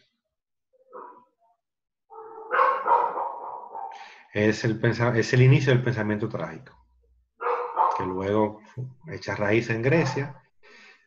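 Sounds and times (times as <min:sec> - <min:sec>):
dog howling: 0:02.1 - 0:04.0.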